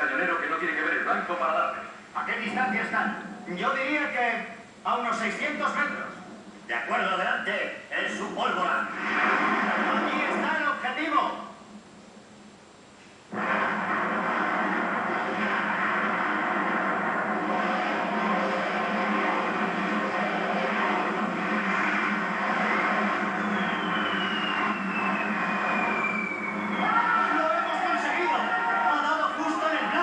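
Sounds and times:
battle scene soundtrack on television: 0.0 - 30.0
high whistle falling in pitch: 23.4 - 27.4.

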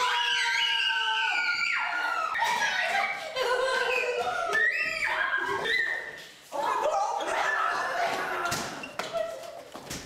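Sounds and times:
people screaming in fright: 0.0 - 8.8.

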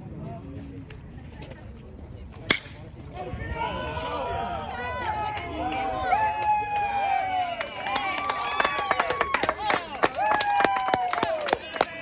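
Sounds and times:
baseball bat cracking ball: 2.5 - 2.8
crowd shouting and cheering: 3.2 - 12.0.

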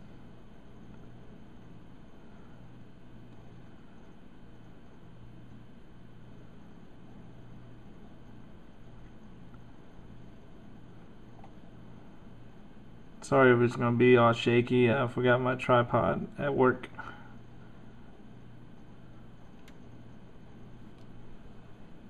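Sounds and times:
low hum with faint hiss: 0.0 - 22.0.

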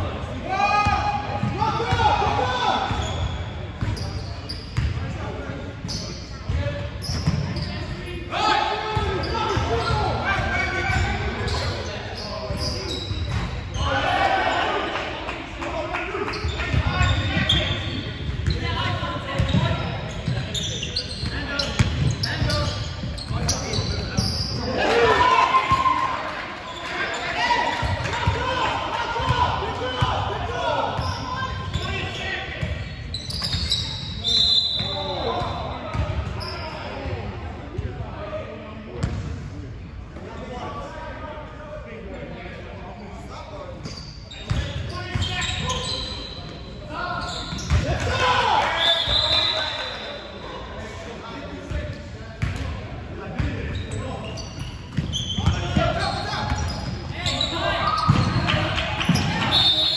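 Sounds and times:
players shouting in echoing hall: 0.0 - 39.7, 40.3 - 59.9
basketball bouncing on court: 4.8 - 5.0, 19.4 - 20.5, 35.4 - 36.3, 47.5 - 47.9, 57.9 - 59.4.

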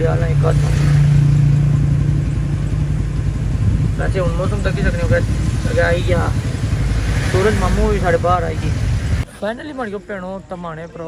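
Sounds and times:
engine idling: 1.3 - 9.2.

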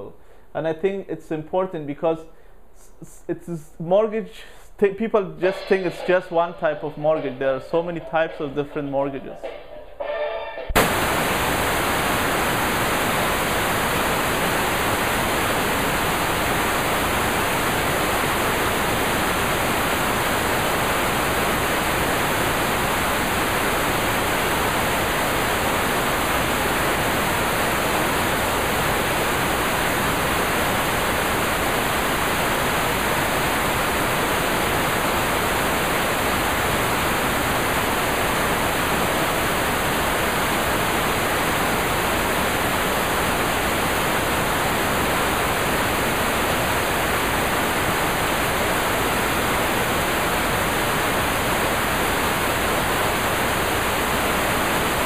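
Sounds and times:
loud static hiss: 10.0 - 55.0.

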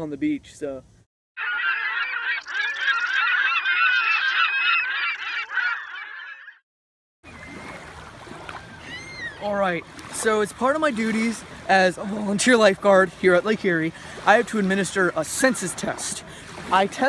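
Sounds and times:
geese honking: 1.4 - 6.6.

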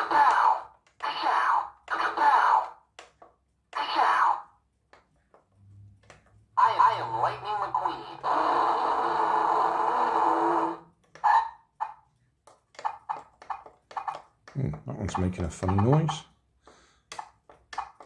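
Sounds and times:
toy car recorded voice: 0.0 - 2.8, 3.7 - 4.6, 6.6 - 11.6
toy sound effects: 0.0 - 4.6, 6.6 - 12.0, 12.7 - 16.4.

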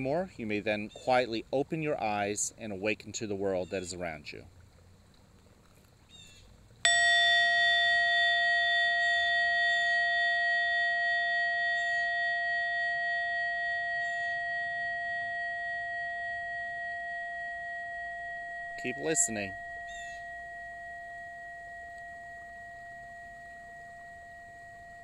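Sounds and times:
bell ringing: 6.9 - 25.0.

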